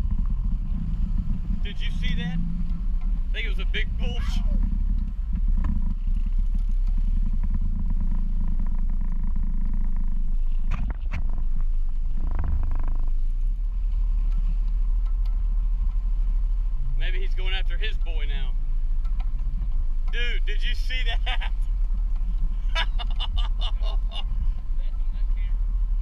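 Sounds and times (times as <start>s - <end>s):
boat engine rumble: 0.0s - 26.0s
water against hull: 0.0s - 26.0s
wind buffeting microphone: 0.0s - 26.0s.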